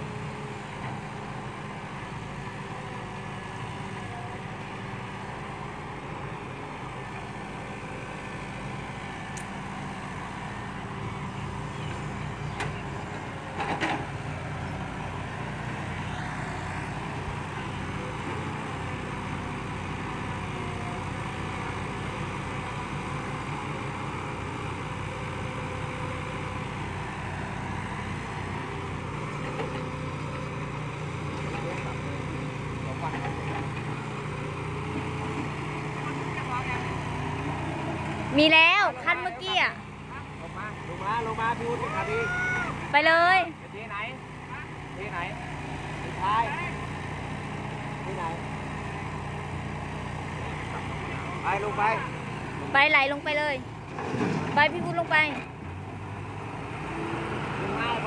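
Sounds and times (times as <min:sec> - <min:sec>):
excavator loading soil: 0:00.0 - 0:43.6, 0:44.2 - 0:58.0
diesel engines running: 0:00.0 - 0:58.0.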